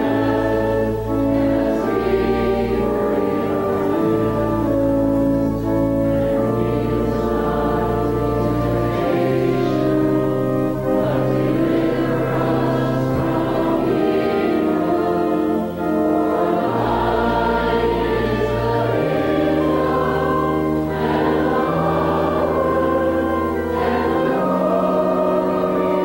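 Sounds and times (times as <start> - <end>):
many voices singing a hymn: 0.0 - 26.0
organ chords: 0.0 - 26.0.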